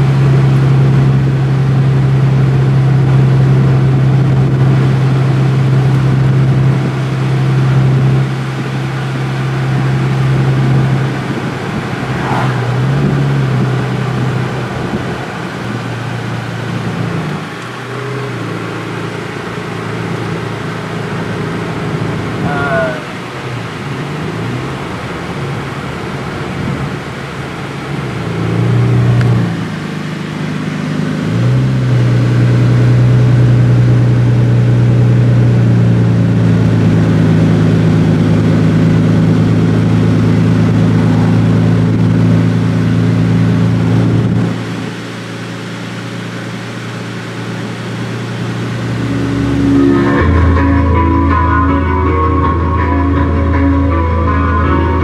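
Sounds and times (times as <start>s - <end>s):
car engine drone: 0.0s - 55.0s
road noise: 0.0s - 55.0s.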